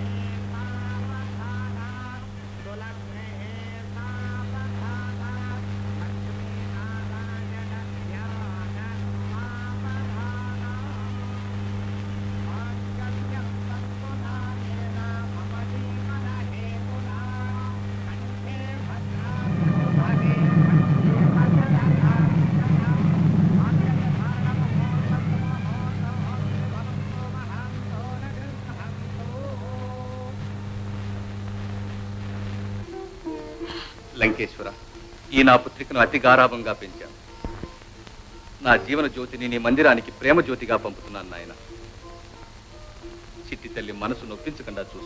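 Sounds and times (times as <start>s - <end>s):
low electrical hum: 0.0s - 45.0s
faint voices: 14.4s - 31.9s
crowd murmur: 19.2s - 29.4s.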